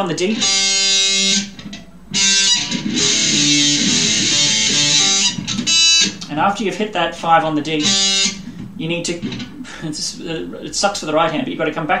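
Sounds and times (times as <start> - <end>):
electric guitar lead notes: 0.0 - 6.4, 7.1 - 9.8.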